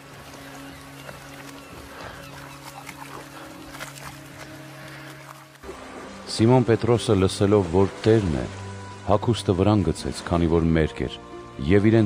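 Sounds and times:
soft held chord of film music: 0.0 - 12.0.

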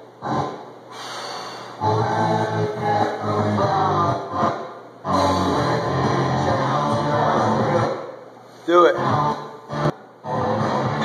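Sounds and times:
sharp breath: 0.9 - 1.8
quiet background music: 1.8 - 11.0.

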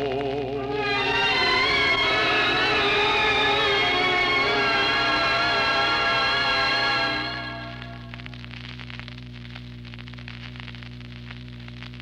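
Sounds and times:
sustained instrumental chord: 0.6 - 8.4.

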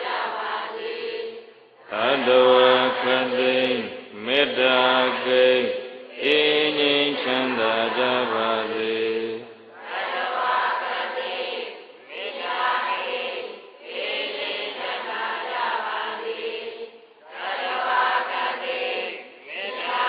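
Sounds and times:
several voices chanting together: 0.0 - 20.0
man chanting: 1.9 - 9.6.

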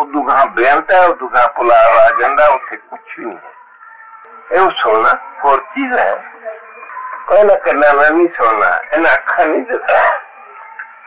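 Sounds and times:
muffled man speaking: 0.0 - 3.5, 4.5 - 6.2, 7.3 - 10.2.

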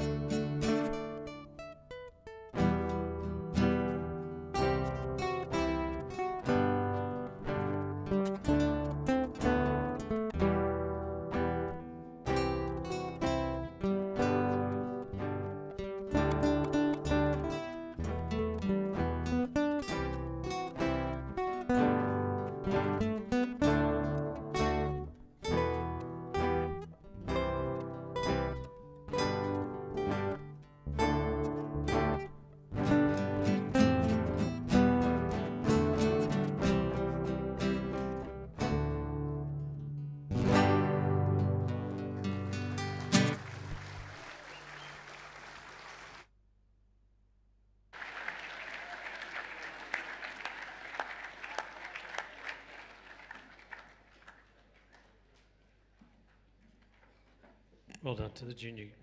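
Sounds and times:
acoustic guitars playing: 0.0 - 46.2.

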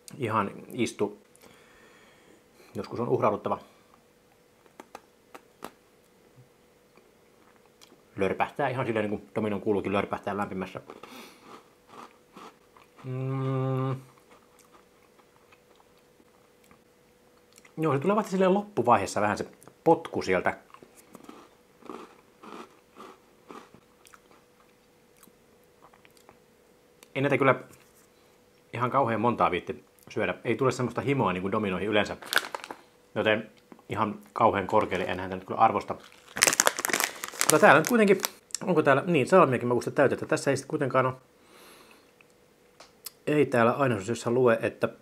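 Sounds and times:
biscuit crunching: 10.8 - 13.2, 20.7 - 26.4, 32.2 - 32.8, 33.6 - 38.5
faint mouth sounds: 12.8 - 14.7.

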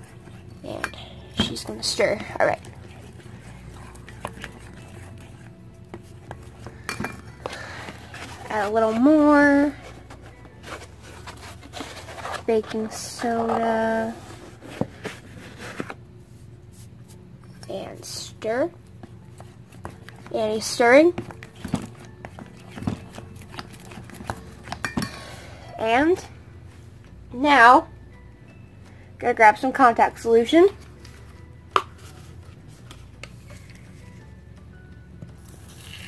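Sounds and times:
low room hum: 0.0 - 36.0.

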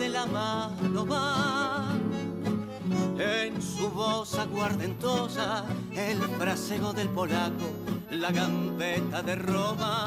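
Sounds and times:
person singing: 0.0 - 10.0
string instrument backing: 0.0 - 10.0.

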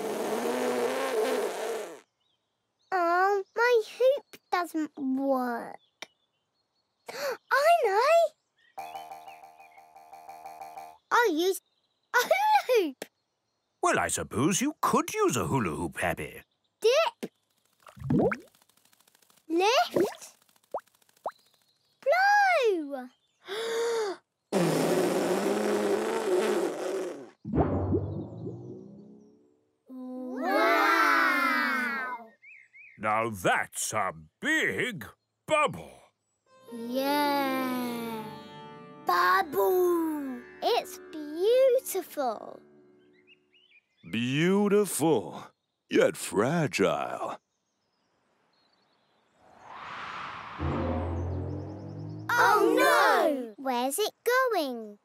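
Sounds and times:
breathy blow into bubble wand: 0.0 - 2.0, 24.6 - 27.4
boing-like wobble: 27.5 - 29.1.

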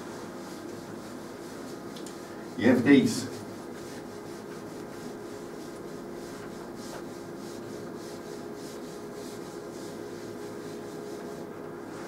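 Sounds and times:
eraser rubbing chalkboard: 0.0 - 12.0.

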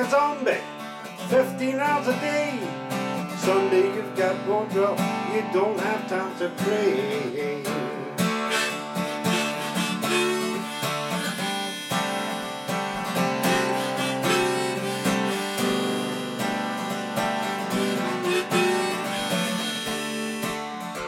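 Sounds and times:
strummed acoustic guitar: 0.0 - 21.0
harmonica melody: 1.2 - 21.0.

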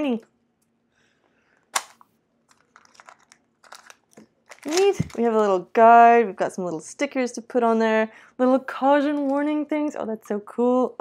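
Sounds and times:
plastic wrapping crinkling: 2.5 - 5.4.

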